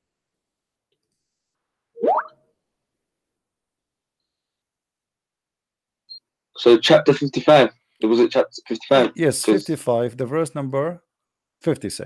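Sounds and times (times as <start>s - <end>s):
rising plop-like blip: 2.0s - 2.3s.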